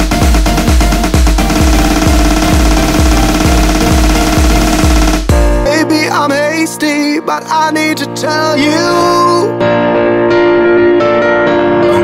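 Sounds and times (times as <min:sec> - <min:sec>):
electronic dance music: 0:00.0 - 0:05.7.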